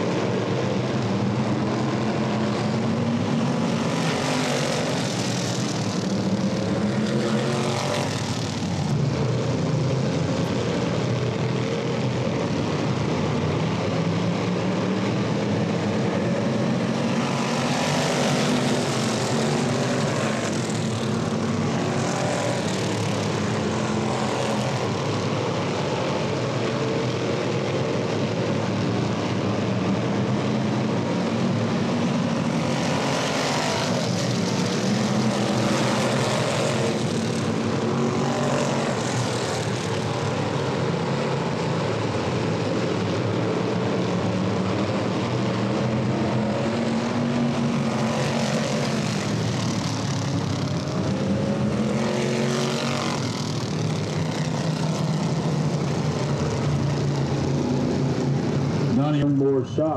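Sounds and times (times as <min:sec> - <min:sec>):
race car engines passing: 0:00.0 - 0:59.9.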